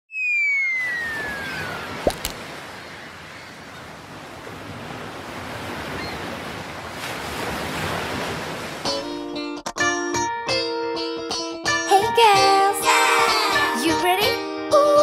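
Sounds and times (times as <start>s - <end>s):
whistle-like tone gliding downward: 0.1s - 1.9s
ocean surf: 0.4s - 9.0s.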